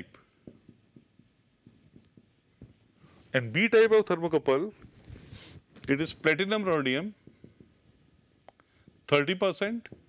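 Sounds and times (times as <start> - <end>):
marker pen writing on whiteboard: 0.0 - 3.2, 4.8 - 10.0.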